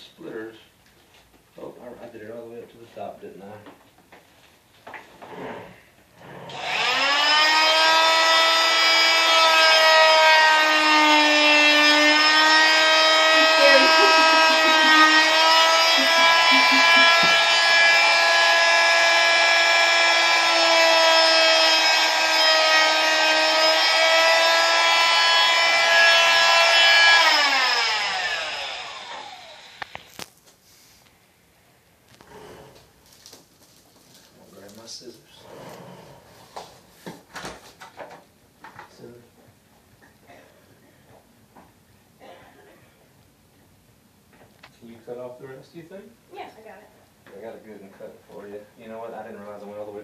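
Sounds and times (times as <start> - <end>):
electric cast saw whining: 6.5 - 30.3.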